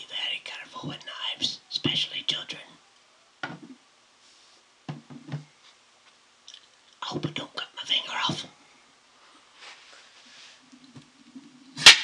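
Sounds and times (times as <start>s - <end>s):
man whispering: 0.0s - 2.8s, 7.0s - 8.6s.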